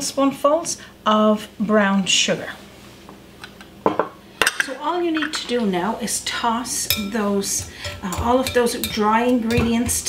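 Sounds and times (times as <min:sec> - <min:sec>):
glass dish clinking: 0:06.9 - 0:09.9.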